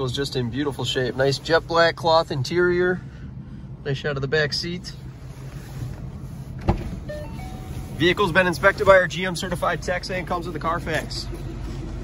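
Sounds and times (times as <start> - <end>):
low rumble in car cabin: 0.0 - 12.0.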